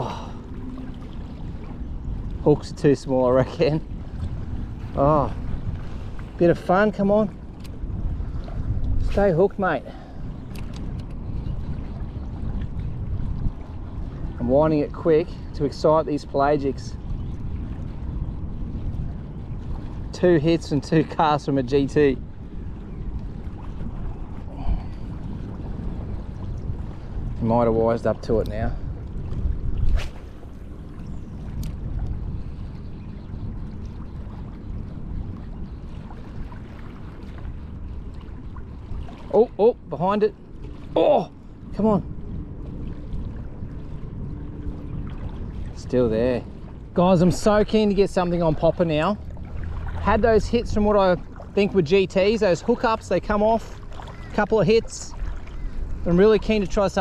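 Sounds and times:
small waves lapping: 0.0s - 57.0s
wind buffeting microphone: 0.0s - 57.0s.

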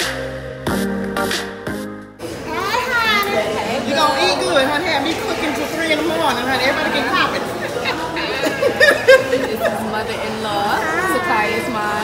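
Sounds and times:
overlapping voices chattering: 1.9s - 12.0s.

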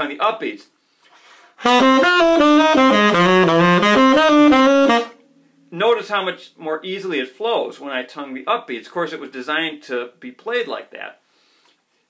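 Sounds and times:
tenor saxophone playing jazz: 1.6s - 5.2s.

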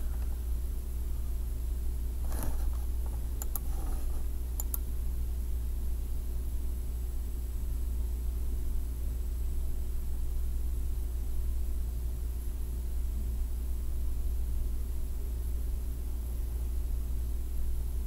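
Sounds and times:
low electrical hum and hiss: 0.0s - 18.0s
computer mouse clicks: 3.4s - 4.8s.

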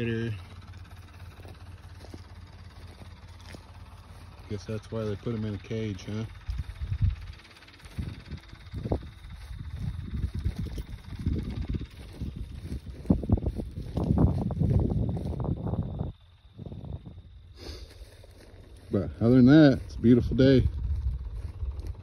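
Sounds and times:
wind buffeting microphone: 6.0s - 17.4s, 18.8s - 22.0s.

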